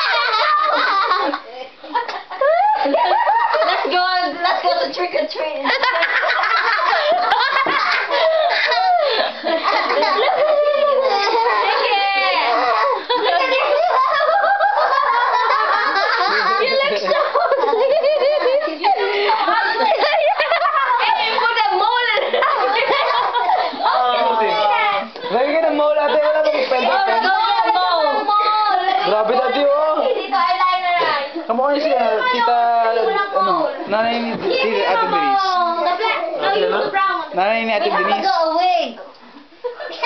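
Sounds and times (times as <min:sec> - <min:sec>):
children laughing: 0:00.0 - 0:37.1, 0:37.9 - 0:40.0.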